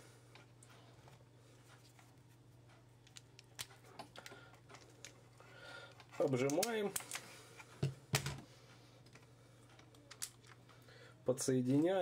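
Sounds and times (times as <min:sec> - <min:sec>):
faint small clicks of handling: 0:09.0 - 0:10.8.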